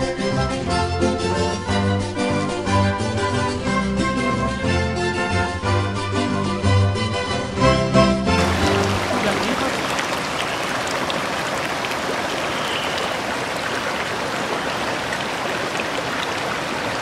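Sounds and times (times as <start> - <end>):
water rushing over weirs: 8.4 - 17.0.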